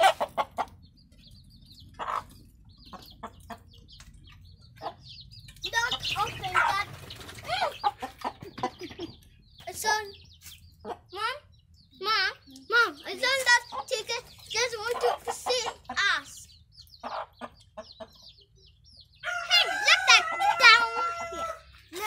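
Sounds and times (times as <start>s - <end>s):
chicks peeping: 0.0s - 22.0s
hen clucking: 0.0s - 22.0s.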